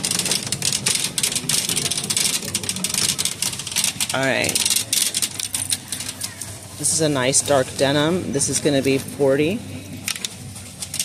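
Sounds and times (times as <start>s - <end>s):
shopping cart rattling: 0.0s - 11.0s.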